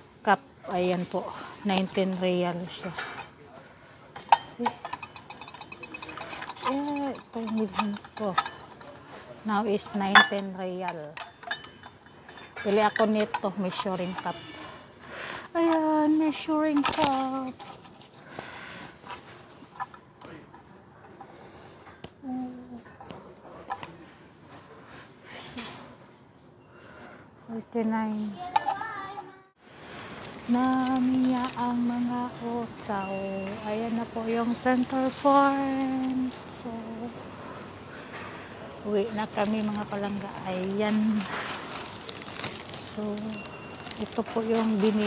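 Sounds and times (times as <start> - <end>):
shop background noise: 0.0 - 45.0
metal measuring cups clinking: 4.2 - 14.6
packaging rustling: 15.6 - 18.3, 34.2 - 36.6, 39.1 - 45.0.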